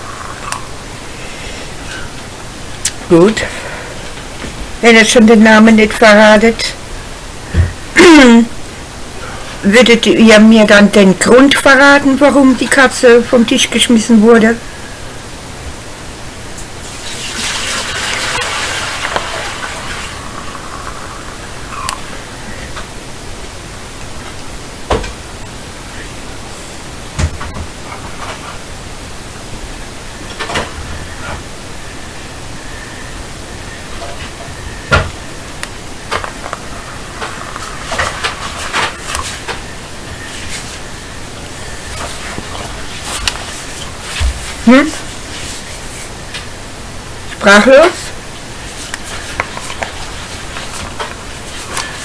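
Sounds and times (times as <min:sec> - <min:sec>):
steady noise hiss: 0:00.0 - 0:52.0.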